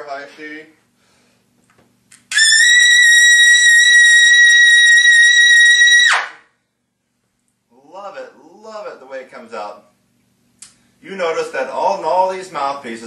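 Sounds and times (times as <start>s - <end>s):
trumpet playing high note: 2.3s - 6.4s.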